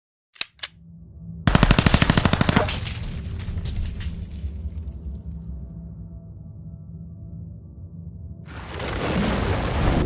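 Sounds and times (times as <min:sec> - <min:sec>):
low steady drone: 0:00.8 - 0:03.9, 0:04.5 - 0:08.5
rapid automatic gunfire: 0:01.5 - 0:02.9.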